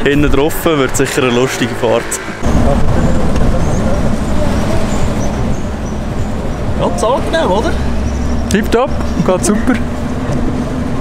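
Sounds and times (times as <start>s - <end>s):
vehicle engine and road noise: 0.0s - 11.0s.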